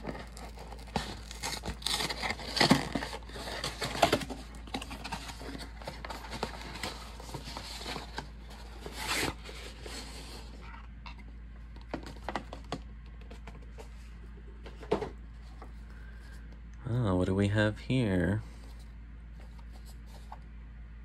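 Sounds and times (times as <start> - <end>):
cardboard box tearing: 0.0 - 10.6
cardboard crinkling and scraping: 0.0 - 15.9, 18.5 - 20.4.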